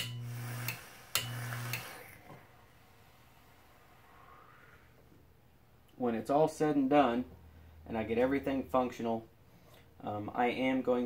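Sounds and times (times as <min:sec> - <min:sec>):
relay clicking: 0:00.0 - 0:02.0
coil sizzling: 0:00.0 - 0:02.3
low mains hum: 0:00.0 - 0:11.0.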